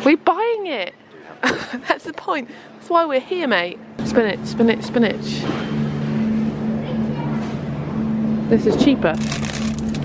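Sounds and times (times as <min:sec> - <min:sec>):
low mechanical drone: 0:03.8 - 0:10.0.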